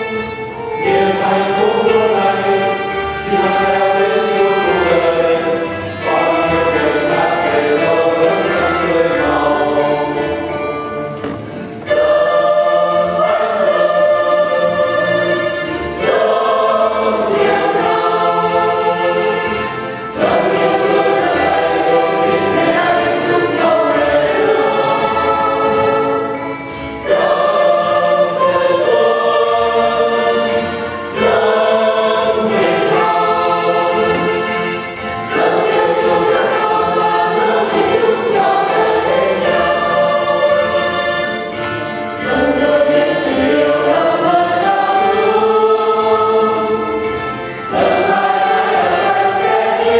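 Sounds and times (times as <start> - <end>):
choir singing a hymn: 0.0 - 49.9.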